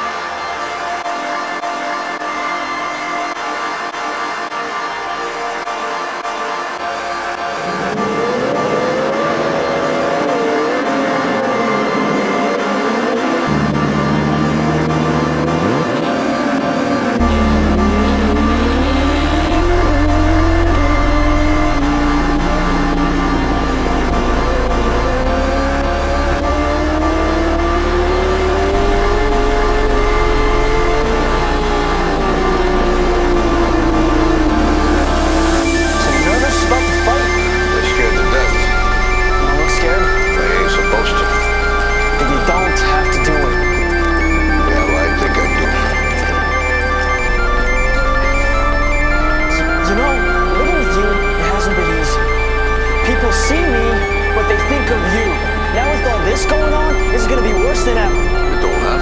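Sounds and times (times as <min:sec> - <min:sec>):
background music: 0:00.0 - 0:59.0
racing motorcycle engines revving: 0:06.2 - 0:59.0.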